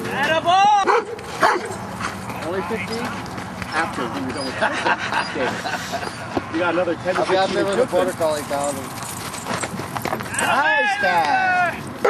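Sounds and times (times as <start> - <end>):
dog barking and whining: 0.8 - 1.8.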